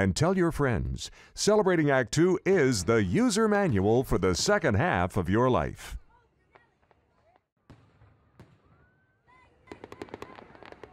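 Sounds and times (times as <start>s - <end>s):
crackling firework pops: 9.7s - 10.9s.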